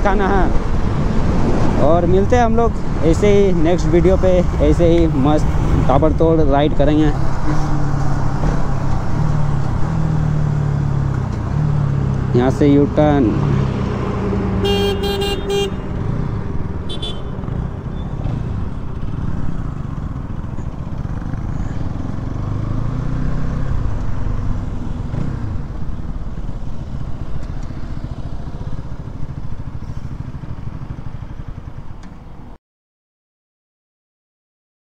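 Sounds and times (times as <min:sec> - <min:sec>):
vehicle horn honking: 0:14.6 - 0:15.9, 0:16.9 - 0:17.4.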